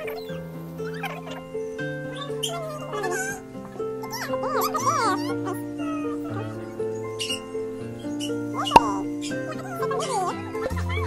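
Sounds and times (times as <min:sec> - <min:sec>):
background music sustained notes: 0:00.0 - 0:11.0
puppy squealing: 0:00.0 - 0:11.0.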